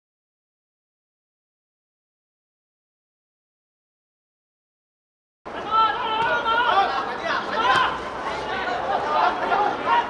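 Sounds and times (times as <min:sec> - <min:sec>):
voices chattering and calling out: 0:05.5 - 0:10.0.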